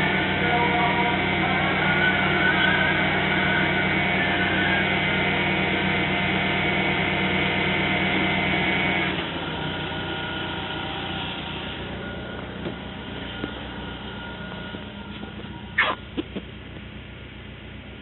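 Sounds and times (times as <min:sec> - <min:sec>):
car engine idling: 0:00.0 - 0:18.0
steady whine: 0:00.0 - 0:18.0.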